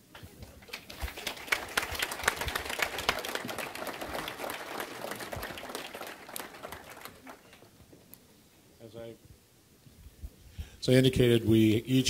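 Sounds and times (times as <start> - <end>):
audience applauding: 0.6 - 7.8.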